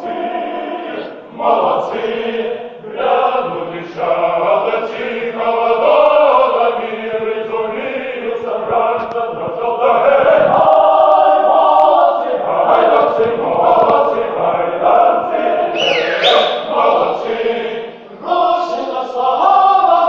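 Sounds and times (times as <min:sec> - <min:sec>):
male choir singing a cappella: 0:00.0 - 0:20.0.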